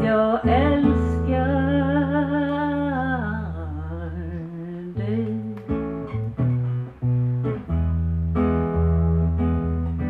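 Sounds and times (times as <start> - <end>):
woman singing: 0.0 - 6.2
acoustic guitar chords: 0.0 - 10.0.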